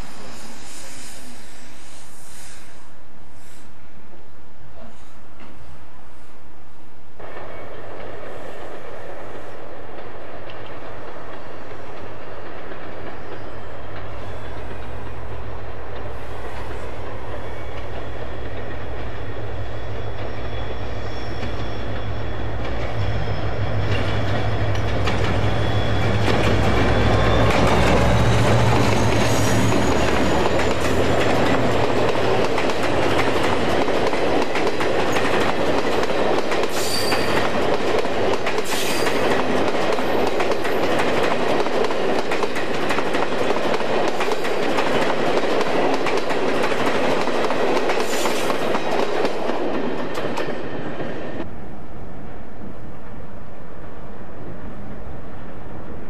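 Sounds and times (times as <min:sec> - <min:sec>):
train wheels clattering on rails: 0:09.8 - 0:51.5.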